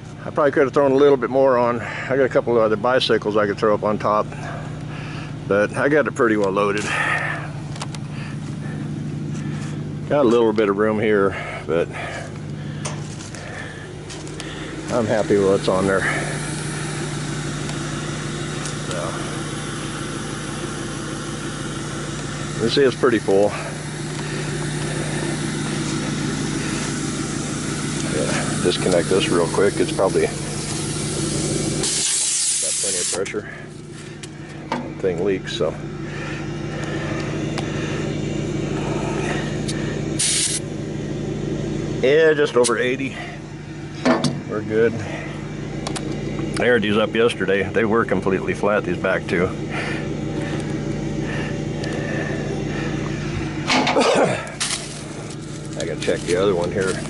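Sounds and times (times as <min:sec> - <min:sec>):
pickup truck engine idling: 0:00.0 - 0:57.0
short hiss of air: 0:30.5 - 0:33.2, 0:40.2 - 0:40.6.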